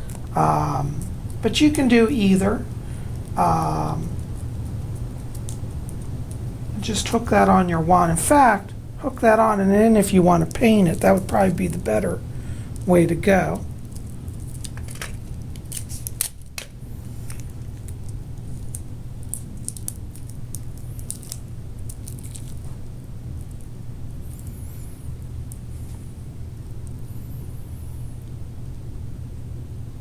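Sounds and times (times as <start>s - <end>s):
steady low hum: 0.0s - 30.0s
adhesive tape clicks and crinkles: 4.4s - 6.4s, 13.6s - 23.7s.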